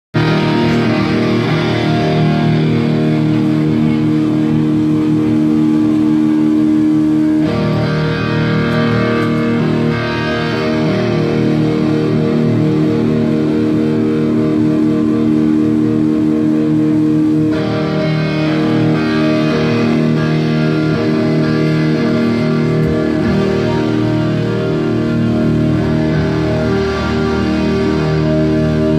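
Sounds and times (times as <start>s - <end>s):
electric guitar chords: 0.1s - 28.9s
live rock band playing: 0.2s - 28.9s.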